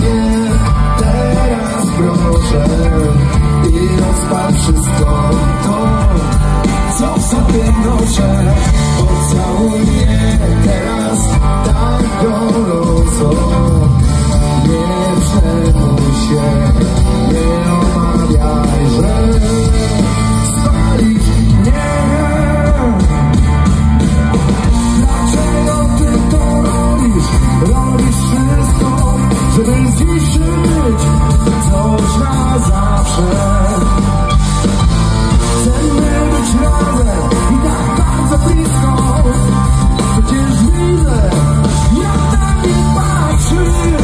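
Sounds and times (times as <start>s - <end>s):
man singing: 0.0s - 23.8s, 24.6s - 44.0s
bass guitar: 0.0s - 44.0s
drum kit: 0.0s - 44.0s
electric guitars: 0.0s - 44.0s
rock band playing live: 0.0s - 44.0s.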